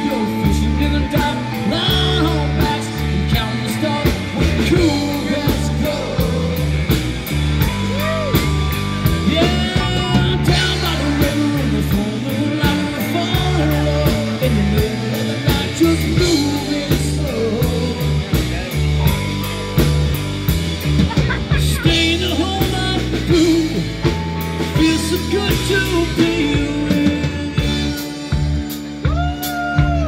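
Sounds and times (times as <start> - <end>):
rock band playing: 0.0 - 30.0.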